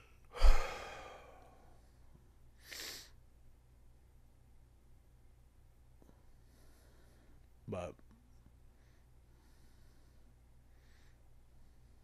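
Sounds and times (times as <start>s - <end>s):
man sighing heavily: 0.3s - 1.6s.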